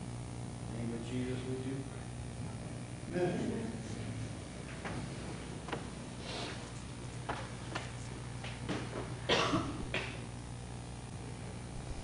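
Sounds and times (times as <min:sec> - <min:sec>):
steady low hum: 0:00.0 - 0:12.0
person coughing: 0:09.3 - 0:10.2.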